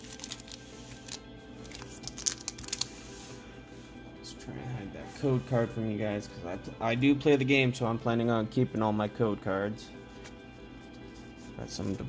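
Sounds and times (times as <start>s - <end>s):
foil wrappers crinkling: 0.0s - 3.2s
quiet background music: 0.0s - 12.0s.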